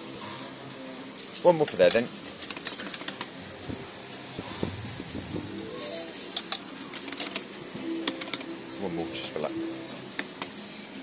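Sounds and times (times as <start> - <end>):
steady arcade hum: 0.0 - 11.0.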